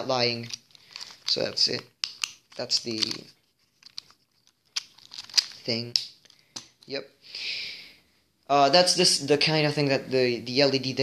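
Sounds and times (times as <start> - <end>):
faint clicks of objects handled: 0.3 - 7.0.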